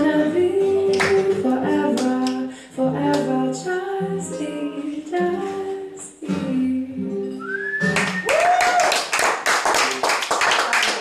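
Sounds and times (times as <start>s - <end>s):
person singing: 0.0s - 7.5s
classical guitar: 0.0s - 8.3s
whistle: 7.4s - 8.4s
audience clapping: 7.8s - 11.0s.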